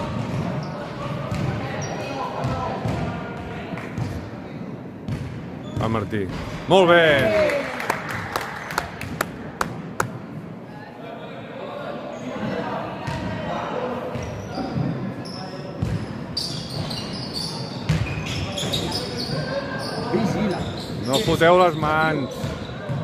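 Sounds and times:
voices echoing in a hall: 0:00.0 - 0:23.0.

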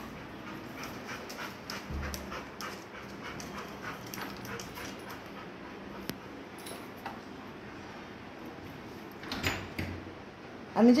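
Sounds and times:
dog panting: 0:00.0 - 0:06.5.

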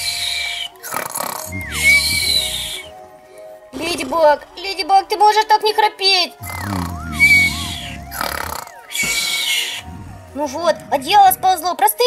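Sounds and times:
cartoon snoring with whistle: 0:00.0 - 0:03.0, 0:06.4 - 0:11.4
soft background music: 0:00.0 - 0:12.0.

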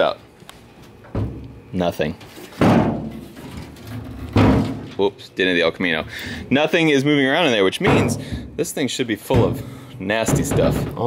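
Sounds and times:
hollow sheet-metal rumble: 0:09.3 - 0:11.0.

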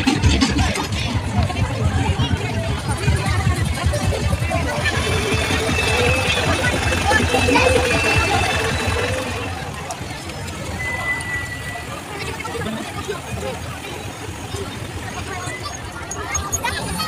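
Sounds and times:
crowd voices: 0:00.0 - 0:17.0.

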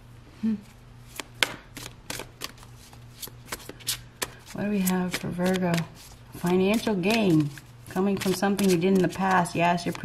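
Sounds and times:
cards being shuffled: 0:01.1 - 0:10.0.

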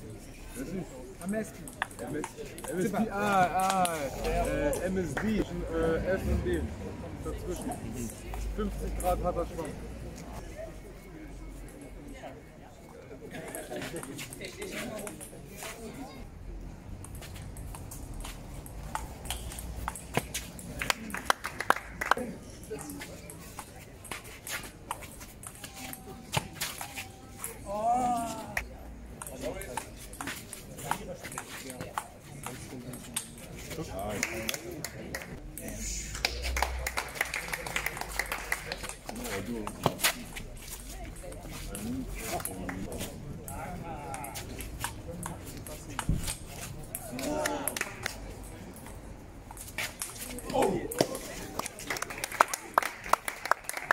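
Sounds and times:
background voices talking: 0:00.0 - 0:53.6.

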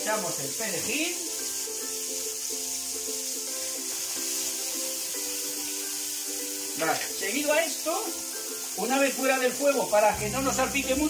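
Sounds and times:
background music of held notes: 0:00.0 - 0:11.0
fish frying in oil: 0:00.0 - 0:11.0.

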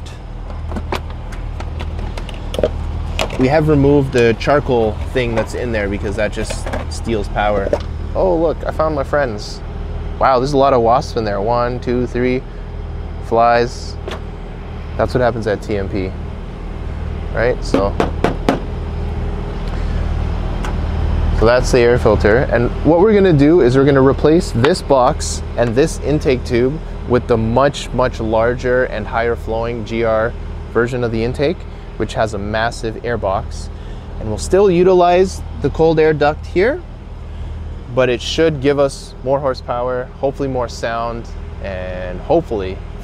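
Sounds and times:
steady low drone: 0:00.0 - 0:43.0
steady low hum: 0:00.0 - 0:43.0.

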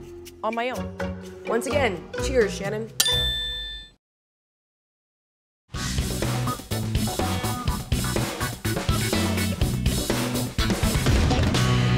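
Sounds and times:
bright metallic ding: 0:03.0 - 0:04.0.

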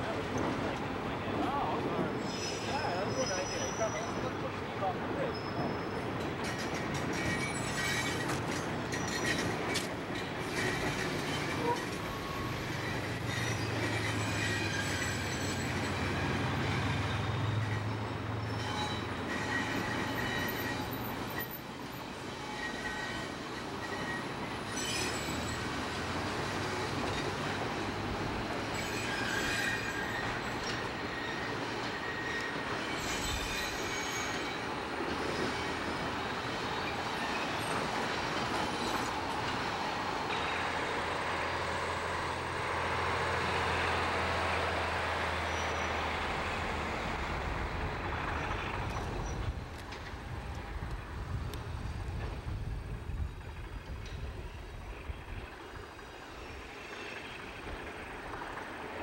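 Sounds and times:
diesel locomotive drone: 0:00.0 - 0:59.0
train rumbling over bridge: 0:00.0 - 0:59.0
train wheels squealing: 0:01.5 - 0:50.7, 0:51.8 - 0:59.0.

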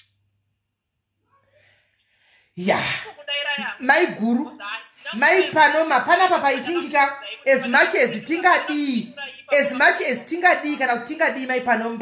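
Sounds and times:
woman speaking: 0:02.6 - 0:12.0.

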